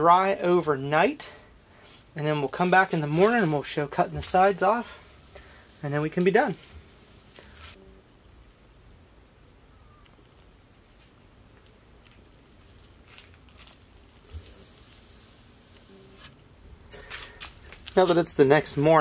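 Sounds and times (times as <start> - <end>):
steady low hum: 0.0 - 19.0
faint rustles: 4.8 - 7.8.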